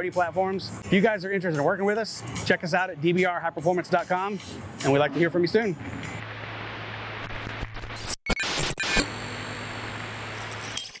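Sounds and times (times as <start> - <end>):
crackling glitches: 5.1 - 10.7
electronic hum with high whines: 5.8 - 10.9.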